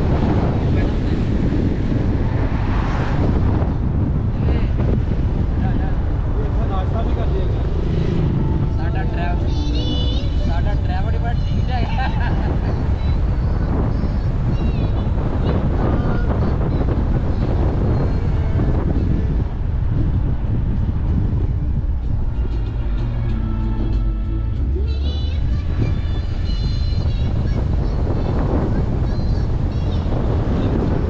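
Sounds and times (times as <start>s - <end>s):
road and wind noise: 0.0s - 31.0s
faint voices: 4.2s - 20.0s
music: 22.0s - 26.8s.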